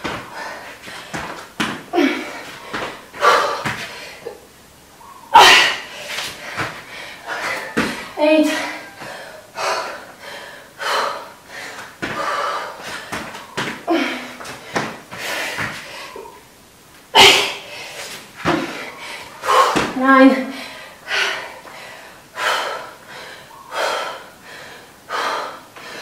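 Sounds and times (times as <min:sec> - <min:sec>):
woman breathing hard: 0:00.2 - 0:04.5, 0:05.4 - 0:13.2, 0:13.9 - 0:16.4, 0:17.4 - 0:19.8, 0:20.4 - 0:26.0
thuds on exercise mat: 0:01.1 - 0:01.9, 0:07.7 - 0:08.0, 0:18.4 - 0:18.8, 0:19.7 - 0:20.1.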